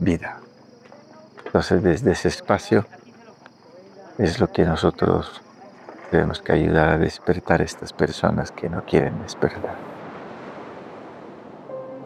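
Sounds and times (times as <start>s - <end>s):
surf washing on a shore: 9.5s - 12.0s.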